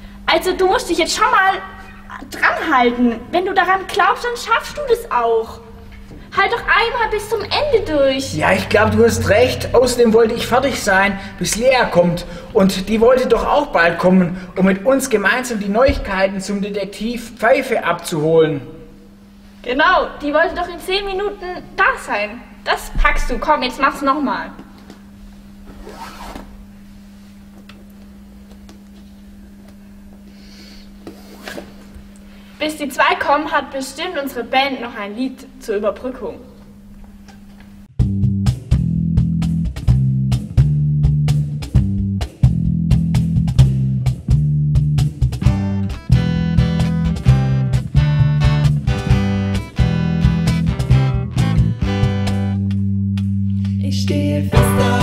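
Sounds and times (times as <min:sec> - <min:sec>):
electric bass guitar: 0:05.7 - 0:13.2, 0:37.9 - 0:55.0
strummed acoustic guitars: 0:54.5 - 0:55.0.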